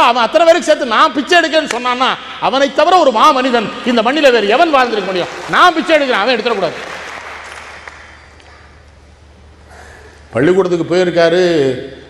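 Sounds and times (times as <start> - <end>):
audience applause: 4.5 - 8.8.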